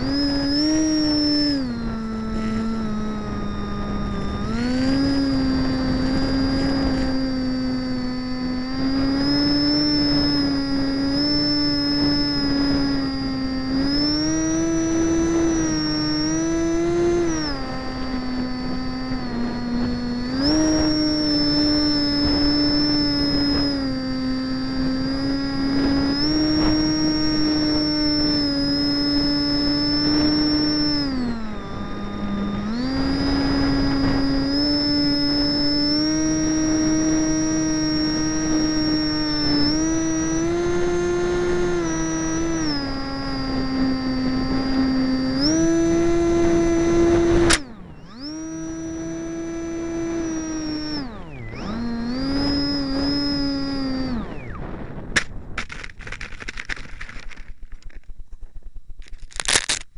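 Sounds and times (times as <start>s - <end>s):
model boat motor and propeller drone: 0.0s - 59.9s.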